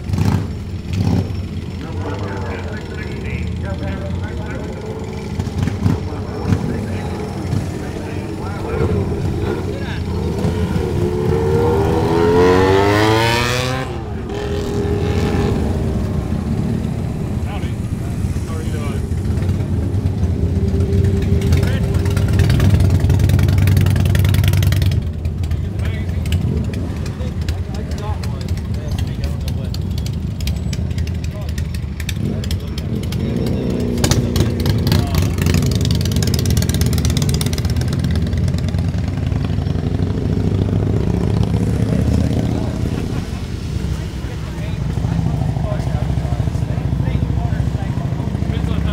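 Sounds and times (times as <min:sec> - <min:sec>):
low rumble of running engines: 0:00.0 - 0:48.9
motorcycle engine revving: 0:00.0 - 0:48.9
background voices: 0:01.7 - 0:23.0, 0:40.9 - 0:48.9.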